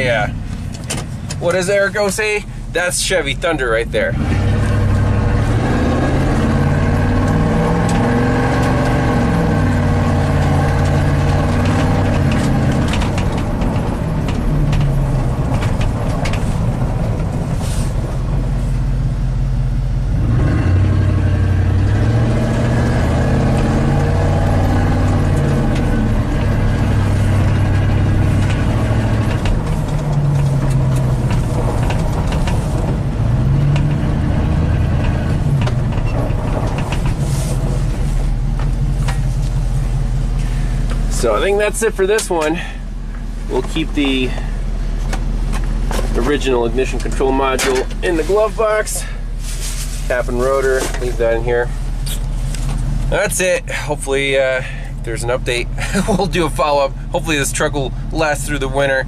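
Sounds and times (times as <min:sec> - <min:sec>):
pickup engine revving while driving: 0:04.0 - 0:18.5, 0:20.0 - 0:42.8.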